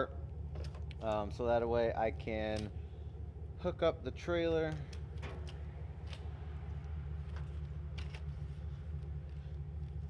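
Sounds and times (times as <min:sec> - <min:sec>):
pickup truck engine idling: 0:00.0 - 0:10.0.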